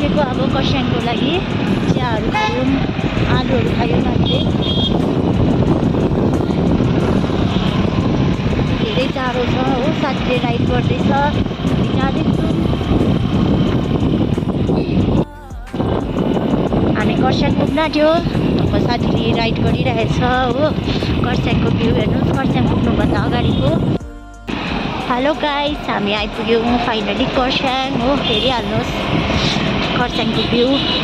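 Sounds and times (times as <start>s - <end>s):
voices talking: 0.0s - 4.8s, 8.7s - 13.2s, 17.0s - 31.0s
scooter wind and engine rush: 0.0s - 31.0s.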